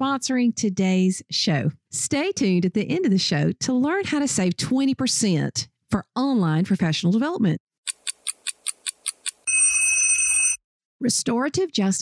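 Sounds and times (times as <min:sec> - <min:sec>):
quick high clock ticks: 0:07.9 - 0:09.8.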